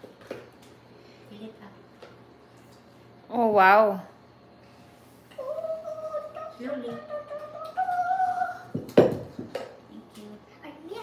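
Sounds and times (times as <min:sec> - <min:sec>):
person humming: 0:05.3 - 0:08.7.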